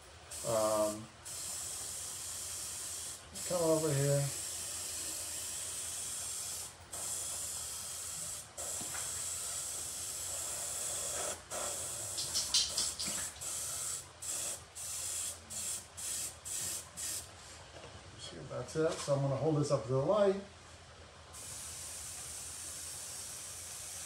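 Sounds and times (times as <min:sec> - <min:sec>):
airbrush spraying with hiss: 0:00.0 - 0:17.4, 0:21.3 - 0:24.0.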